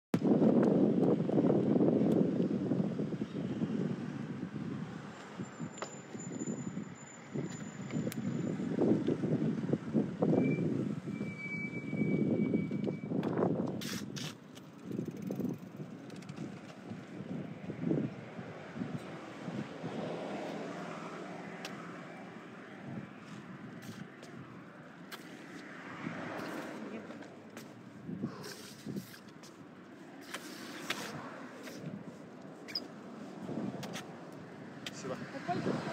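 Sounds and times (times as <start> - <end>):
wind buffeting microphone: 0.2 - 11.2, 11.8 - 20.5, 21.7 - 25.2, 25.9 - 29.5, 33.3 - 35.9.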